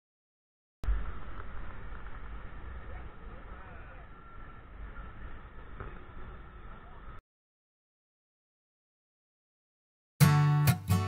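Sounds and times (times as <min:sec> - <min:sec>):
distant falling water: 0:00.8 - 0:07.2
wind: 0:00.8 - 0:07.2
faint voices: 0:01.5 - 0:07.2.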